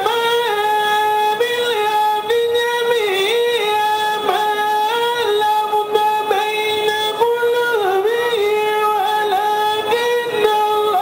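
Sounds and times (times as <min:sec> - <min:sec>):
man singing into a microphone: 0:00.0 - 0:11.0.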